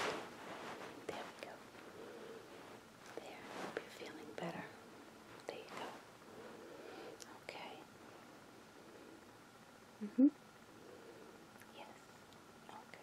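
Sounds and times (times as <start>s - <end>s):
blanket rustling: 0.0s - 1.1s.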